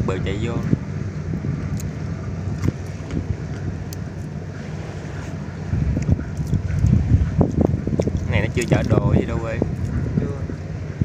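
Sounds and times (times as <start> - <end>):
ship engine drone: 0.0 - 11.0
wind buffeting microphone: 0.0 - 11.0.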